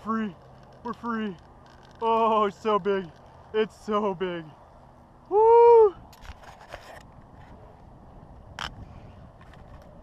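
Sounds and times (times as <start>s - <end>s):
fishing reel clicks and knocks: 0.1s - 2.2s.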